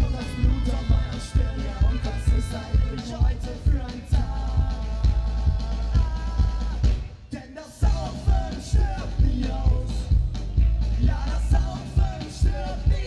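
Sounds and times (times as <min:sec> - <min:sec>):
ska-punk band playing live: 0:00.0 - 0:13.0.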